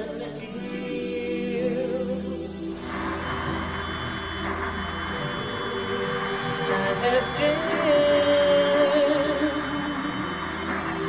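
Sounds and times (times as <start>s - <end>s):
music with sustained notes: 0.0s - 11.0s
jet engine running: 0.7s - 11.0s.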